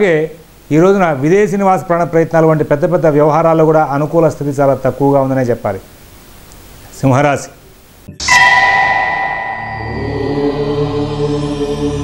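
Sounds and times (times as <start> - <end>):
chanted drone: 8.1 - 12.0
bell ringing: 8.2 - 11.0
pulsing low hum: 8.2 - 12.0.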